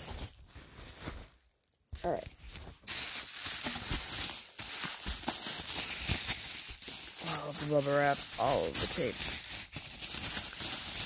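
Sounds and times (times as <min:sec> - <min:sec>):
bubble wrap crinkling: 0:00.0 - 0:11.0.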